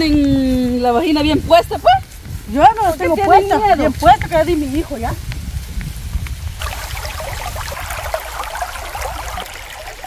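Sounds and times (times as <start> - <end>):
stream trickling over stones: 6.5 - 10.0.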